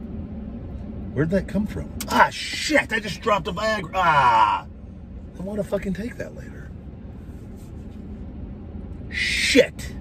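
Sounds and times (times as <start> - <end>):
truck cab low rumble: 0.0 - 10.0
faint rustling on seat: 7.1 - 8.4.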